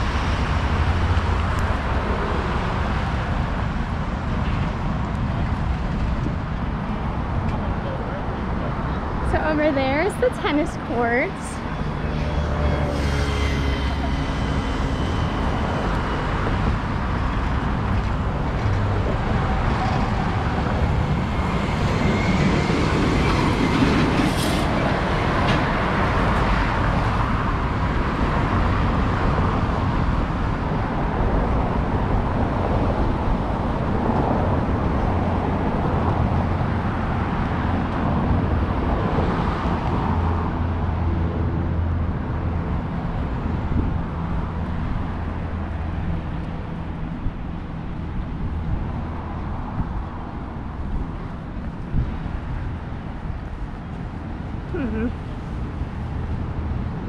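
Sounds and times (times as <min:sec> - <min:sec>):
road traffic passing: 0:00.0 - 0:57.0.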